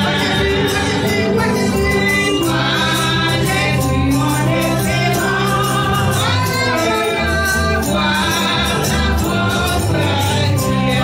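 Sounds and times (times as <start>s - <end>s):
band playing steady beat: 0.0s - 11.0s
group singing gospel: 0.0s - 11.0s.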